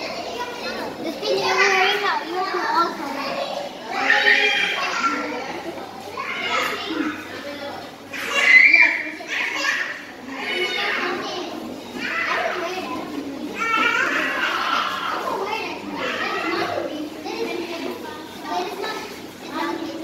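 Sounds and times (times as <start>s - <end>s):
girls chattering and calling out: 0.0s - 20.0s.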